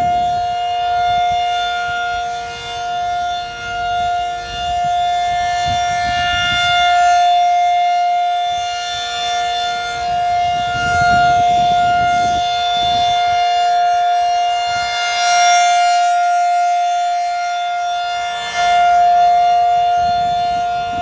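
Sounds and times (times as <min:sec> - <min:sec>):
warning siren wailing: 0:00.0 - 0:21.0.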